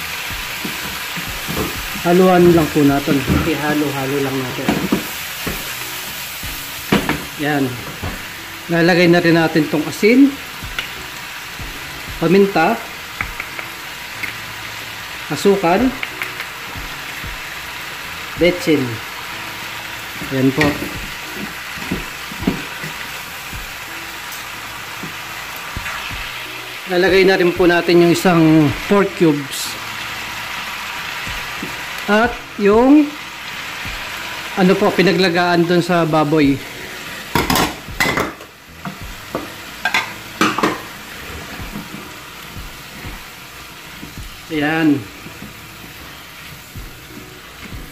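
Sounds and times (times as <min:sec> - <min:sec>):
vegetables sizzling in a wok: 0:00.0 - 0:47.9.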